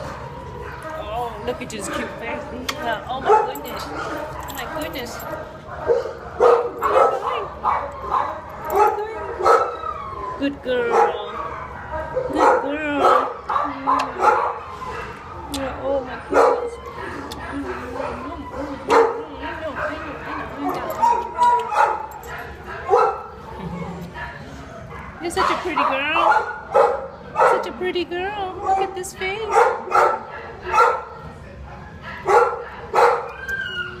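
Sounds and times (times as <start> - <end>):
dog barking: 3.2 - 9.8, 10.9 - 15.2, 16.3 - 16.8, 17.6 - 23.4, 24.2 - 27.8, 28.6 - 31.2, 32.0 - 33.3
dog whining: 33.0 - 34.0.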